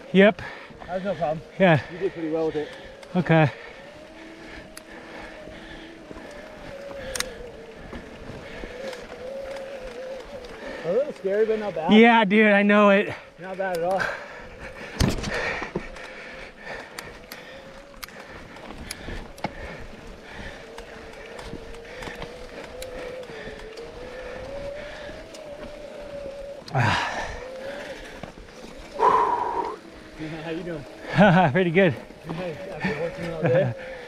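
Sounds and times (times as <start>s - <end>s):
bike tyres crunching on dirt: 0.0s - 34.0s.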